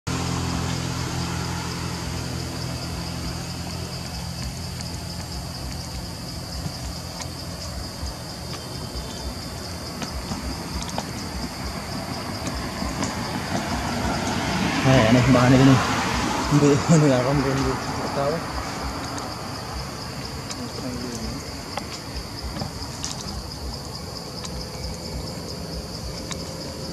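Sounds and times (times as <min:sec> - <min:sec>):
low motor hum: 0:00.1 - 0:16.5.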